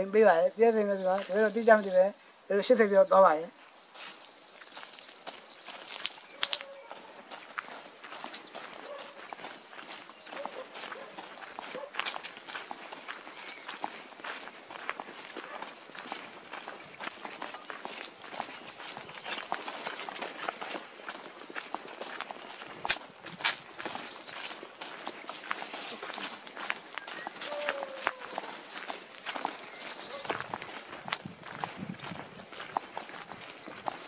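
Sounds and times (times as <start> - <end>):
footsteps on dirt path: 0.0 - 34.0.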